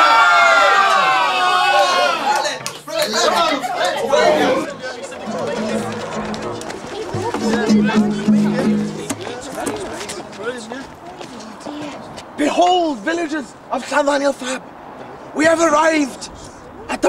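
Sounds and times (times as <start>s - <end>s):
people talking over one another: 1.6s - 14.7s
music with low held notes: 5.3s - 9.6s.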